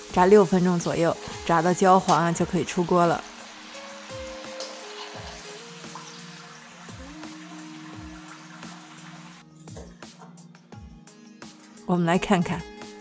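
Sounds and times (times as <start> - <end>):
food sizzling in hot oil: 0.0 - 9.5
gentle background music: 0.0 - 13.0.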